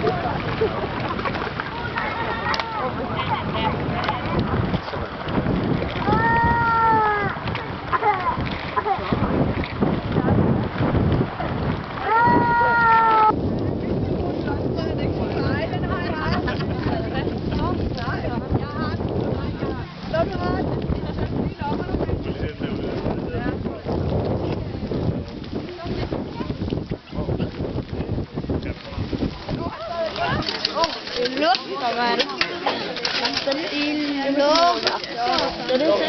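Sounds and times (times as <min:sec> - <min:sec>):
people talking: 0:00.0 - 0:05.4, 0:06.0 - 0:36.0
wind buffeting microphone: 0:00.0 - 0:36.0
people calling out indistinctly: 0:06.0 - 0:08.5, 0:12.0 - 0:13.4.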